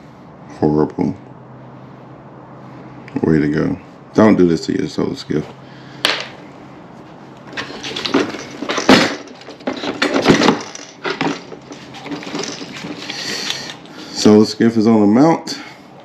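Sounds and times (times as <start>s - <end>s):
hardware clattering and scraping: 7.4s - 13.9s.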